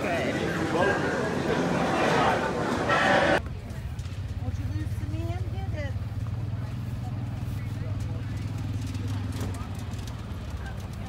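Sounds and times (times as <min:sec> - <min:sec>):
loud indoor din: 0:00.0 - 0:03.4.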